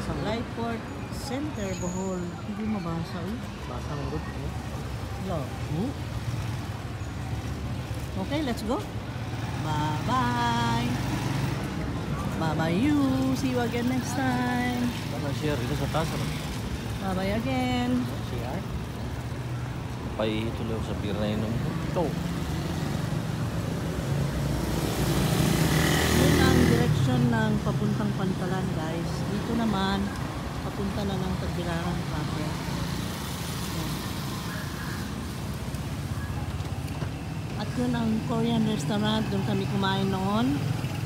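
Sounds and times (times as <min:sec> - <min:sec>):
motor vehicles rumbling: 0:00.0 - 0:41.0
street traffic engines: 0:00.0 - 0:41.0
vehicle passing close: 0:20.2 - 0:29.8.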